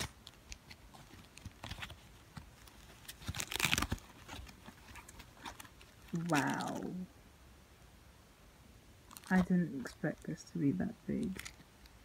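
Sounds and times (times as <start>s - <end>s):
plastic packaging crinkling: 0.0s - 7.0s, 9.1s - 10.3s, 11.1s - 11.7s.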